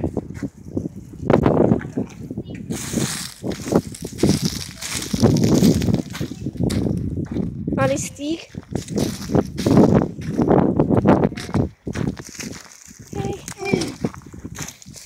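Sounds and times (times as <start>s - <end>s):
footsteps crunching through dry leaves: 2.7s - 7.0s, 8.5s - 10.5s, 11.9s - 15.0s.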